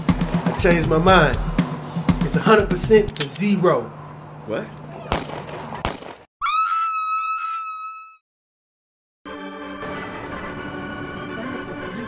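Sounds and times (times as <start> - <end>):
gunshots: 5.1 - 6.3
high-pitched scream: 6.4 - 8.2.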